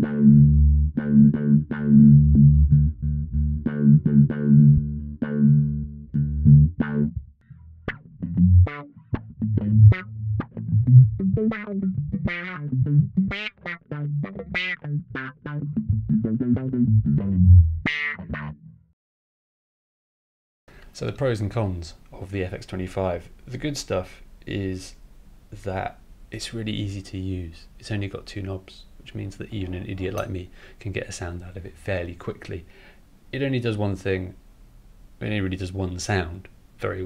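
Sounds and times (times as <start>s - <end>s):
distorted electric bass riff: 0.0s - 18.9s.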